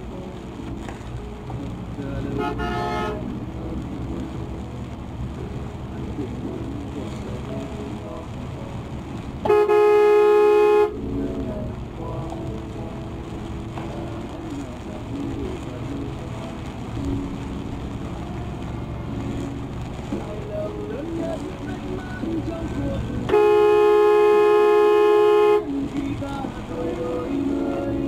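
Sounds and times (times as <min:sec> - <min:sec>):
road and engine rumble: 0:00.0 - 0:28.0
long horn blast: 0:02.3 - 0:03.4, 0:09.4 - 0:11.0, 0:23.2 - 0:25.7.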